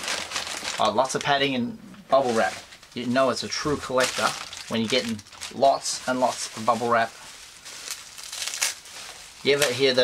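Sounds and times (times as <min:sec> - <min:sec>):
bubble wrap crinkling: 0:00.0 - 0:01.5, 0:02.1 - 0:10.0.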